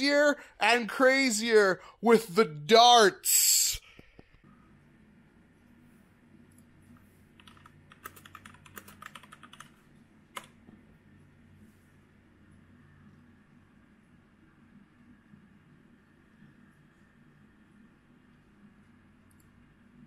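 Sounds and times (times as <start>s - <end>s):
faint low hum: 1.5s - 20.0s
computer keyboard typing: 7.4s - 10.6s.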